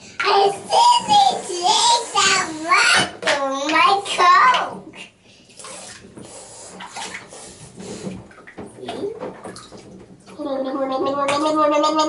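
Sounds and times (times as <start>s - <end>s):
bathwater splashing and sloshing: 0.0s - 11.8s.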